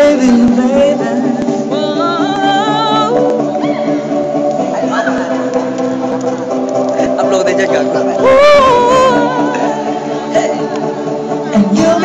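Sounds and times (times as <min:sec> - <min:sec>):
pop music with singing: 0:00.0 - 0:12.0.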